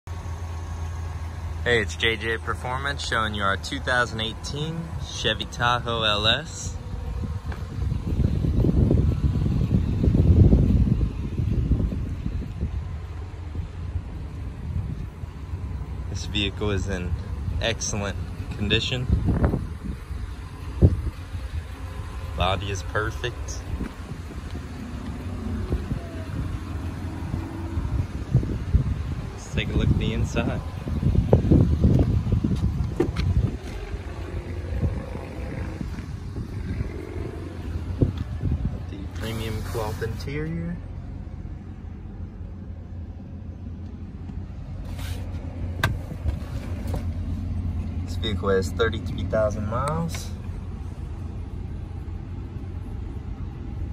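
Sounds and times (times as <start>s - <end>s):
low uneven outdoor rumble: 0.1s - 53.9s.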